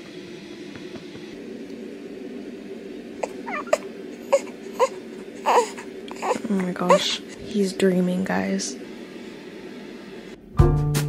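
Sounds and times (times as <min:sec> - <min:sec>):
steady low hum: 0:00.0 - 0:10.7
baby whimpering and squeaking: 0:03.2 - 0:07.2.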